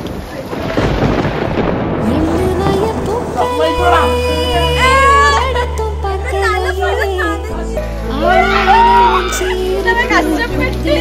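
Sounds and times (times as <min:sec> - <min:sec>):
heavy rain rushing: 0:00.0 - 0:11.0
thunder-like rumble: 0:00.2 - 0:06.1
person speaking: 0:02.2 - 0:05.6.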